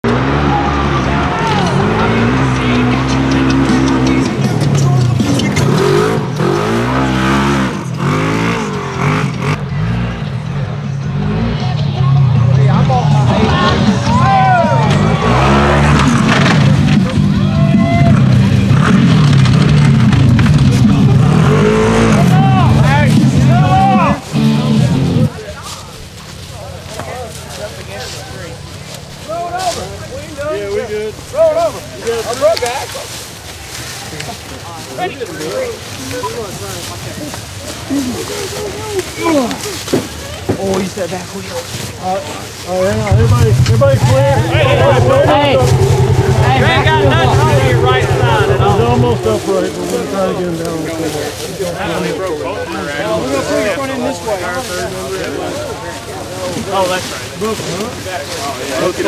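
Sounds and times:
off-road vehicle engine revving: 0:00.0 - 0:25.4, 0:42.5 - 0:51.6.

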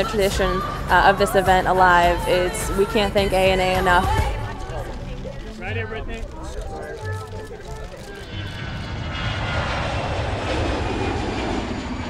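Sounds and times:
faint high engine whine: 0:00.0 - 0:12.0
jet airliner engine roar: 0:06.6 - 0:12.0.

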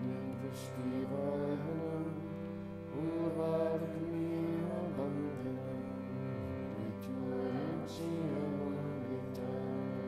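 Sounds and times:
voices chanting a hymn: 0:00.0 - 0:10.0.

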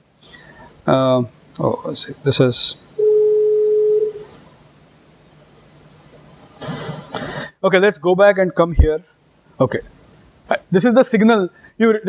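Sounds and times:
burst of hissing noise: 0:06.6 - 0:07.6.

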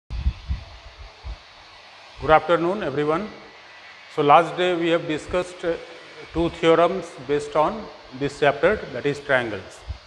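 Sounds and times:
dull low thumps on microphone: 0:00.1 - 0:01.4, 0:09.8 - 0:10.0
faint room noise hiss: 0:00.1 - 0:10.0.

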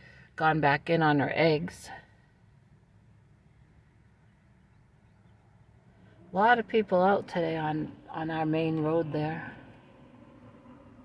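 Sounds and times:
faint low rumble: 0:00.0 - 0:11.0.

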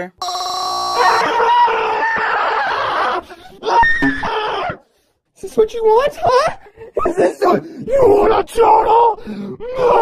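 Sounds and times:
cartoon character screaming: 0:00.3 - 0:04.8.

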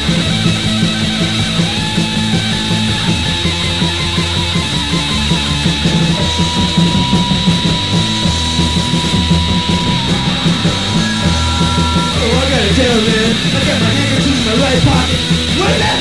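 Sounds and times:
distorted electric guitar lead: 0:00.0 - 0:16.0
punk rock band playing: 0:00.0 - 0:16.0.

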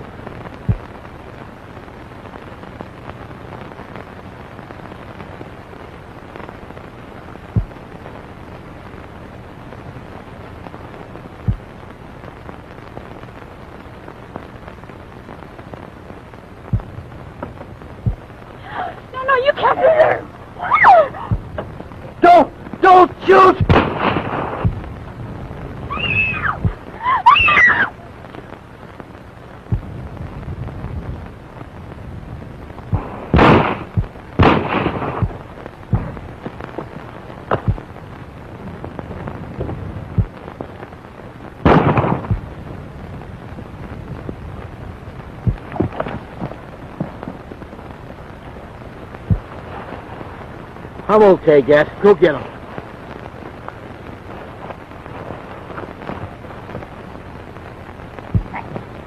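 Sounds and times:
film soundtrack hiss: 0:00.0 - 0:59.0
people shouting and crying out: 0:18.6 - 0:21.4, 0:25.9 - 0:28.1
gunshots: 0:23.4 - 0:24.8, 0:33.0 - 0:36.2, 0:41.6 - 0:42.4.

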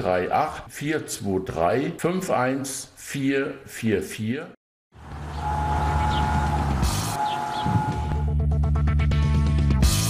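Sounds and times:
low sustained bass notes: 0:05.2 - 0:09.2
held high tone: 0:05.4 - 0:08.4.

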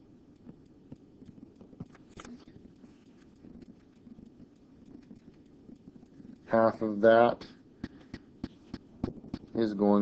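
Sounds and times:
stylus tapping tablet screen: 0:00.3 - 0:06.5, 0:07.4 - 0:09.6.

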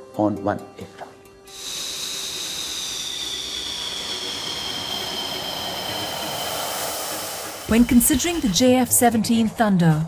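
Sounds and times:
jet engine whine at taxi power: 0:01.5 - 0:09.0.

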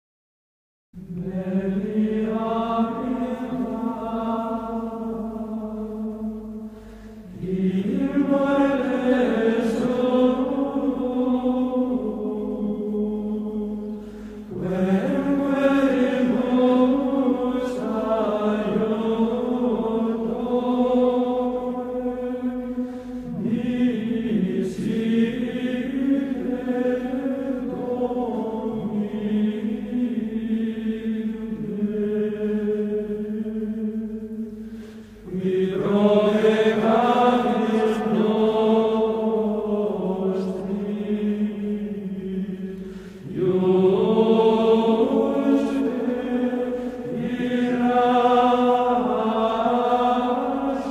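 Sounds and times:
slow vocal chant: 0:01.0 - 0:50.9.

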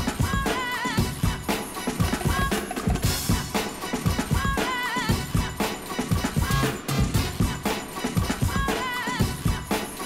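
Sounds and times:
breakbeat music: 0:00.0 - 0:10.0.

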